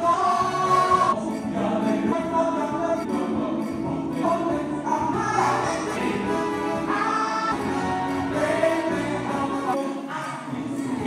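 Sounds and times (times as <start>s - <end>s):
gospel singing: 0.0s - 11.0s.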